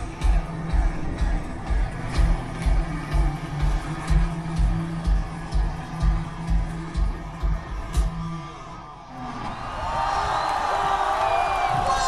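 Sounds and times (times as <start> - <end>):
crowd cheering and whistling: 0.0 - 12.0.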